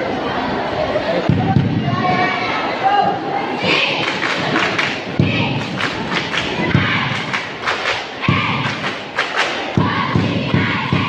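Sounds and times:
crowd chanting and shouting: 0.0s - 11.0s
heavy rhythmic thumps: 3.6s - 11.0s
sharp claps: 4.0s - 11.0s.

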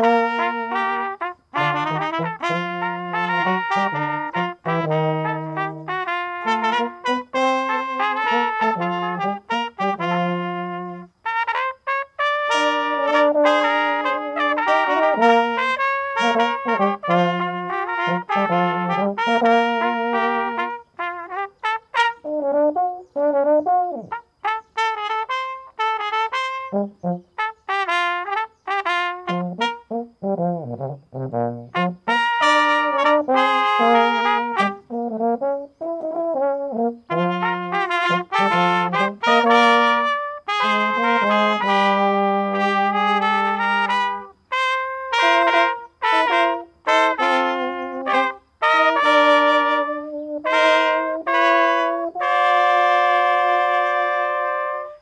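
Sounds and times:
brass trio playing: 0.0s - 55.0s.

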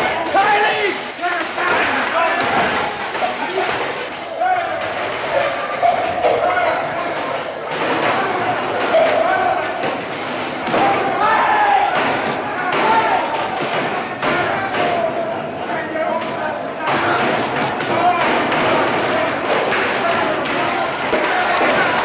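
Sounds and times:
men shouting: 0.0s - 10.0s, 10.6s - 22.0s.

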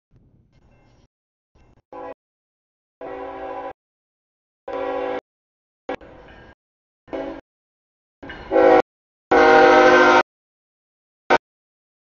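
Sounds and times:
locomotive air horn blasts: 1.9s - 2.2s, 3.0s - 3.8s, 4.7s - 5.2s, 7.1s - 7.4s, 8.5s - 10.2s.

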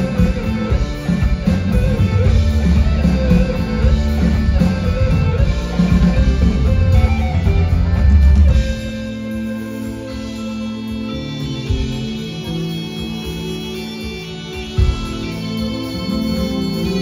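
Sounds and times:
live folk-rock band playing: 0.0s - 17.0s.

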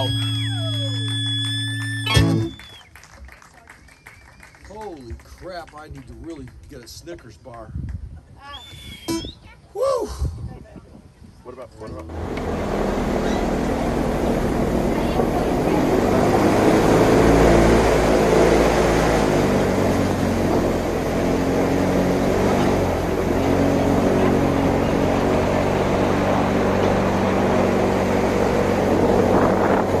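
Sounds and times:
boat engine running: 0.0s - 3.0s, 11.8s - 30.0s.

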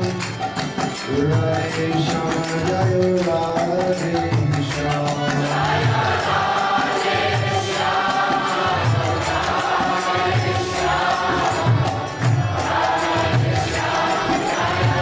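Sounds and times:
harmonium: 0.0s - 15.0s
voices chanting together: 5.1s - 15.0s.

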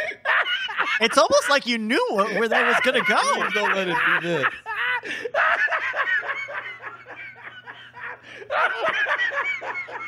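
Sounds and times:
men laughing: 0.0s - 10.0s.

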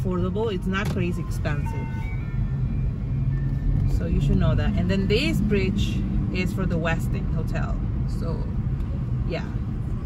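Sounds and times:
car engine hum: 0.0s - 10.0s
road noise: 0.0s - 10.0s
street traffic: 0.0s - 10.0s.

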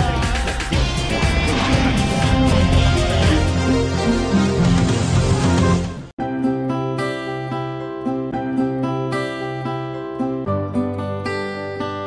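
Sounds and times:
electronic intro music: 0.0s - 6.6s
swooping sound effect: 0.4s - 6.0s.

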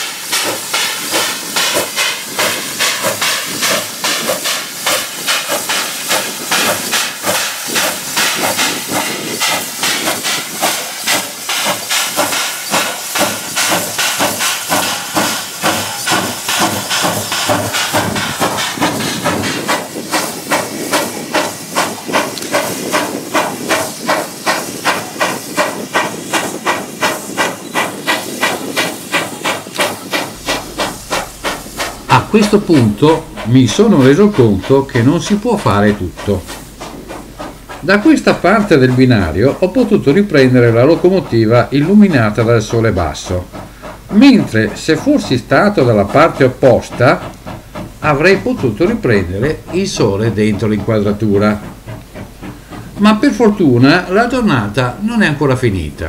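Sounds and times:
steam locomotive chuffing: 0.0s - 56.0s.

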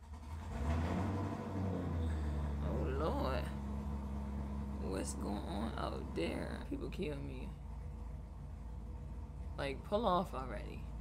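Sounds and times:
car engine rumbling outside: 0.0s - 11.0s.

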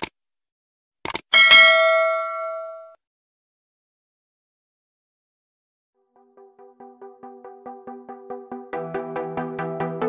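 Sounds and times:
bell ding: 1.4s - 3.0s.

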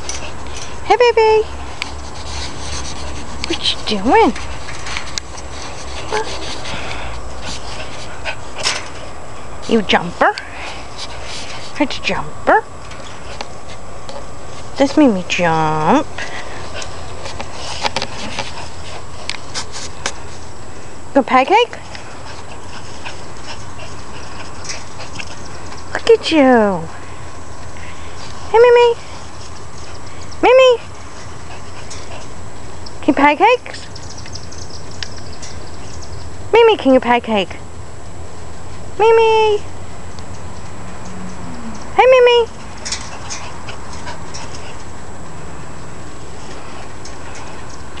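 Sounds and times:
steady background hiss: 0.0s - 48.0s
dog panting: 1.5s - 9.2s, 16.0s - 20.3s, 21.8s - 26.5s, 27.6s - 32.8s, 41.8s - 45.1s
clicks against chain-link fence: 40.2s - 44.9s.

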